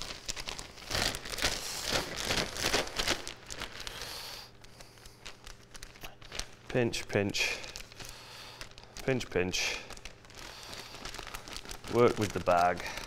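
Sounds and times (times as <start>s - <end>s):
plastic bag crinkling: 0.0s - 13.0s.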